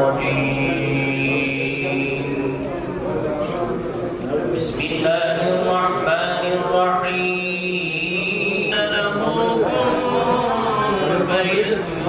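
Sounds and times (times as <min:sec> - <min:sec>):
man chanting religious recitation: 0:00.0 - 0:03.4, 0:04.4 - 0:12.0.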